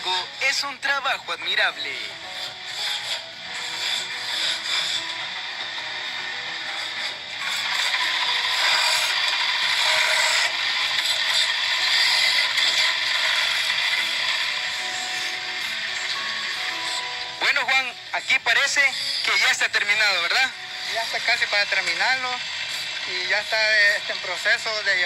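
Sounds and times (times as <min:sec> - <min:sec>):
wood lathe tool rasping hiss: 0:01.6 - 0:25.0.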